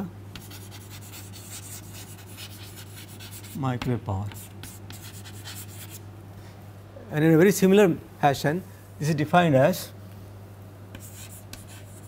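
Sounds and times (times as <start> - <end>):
steady low hum: 0.0 - 12.0
chalk scratching on chalkboard: 0.4 - 6.0, 11.0 - 12.0.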